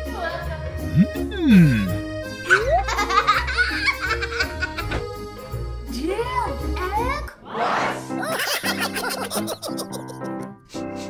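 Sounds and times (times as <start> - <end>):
background music: 0.0 - 11.0
small child giggling: 2.5 - 4.9, 8.2 - 10.6.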